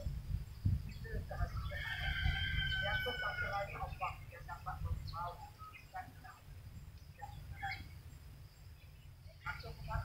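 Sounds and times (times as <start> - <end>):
bird calling: 0.9 - 10.0.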